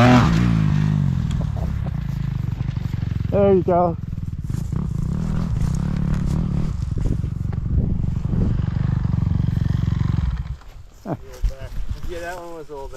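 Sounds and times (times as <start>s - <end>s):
off-road vehicle engine running: 0.0s - 10.7s.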